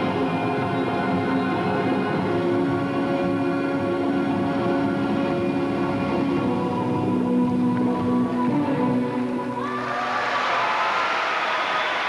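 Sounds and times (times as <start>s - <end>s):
crowd applauding: 9.9s - 12.0s.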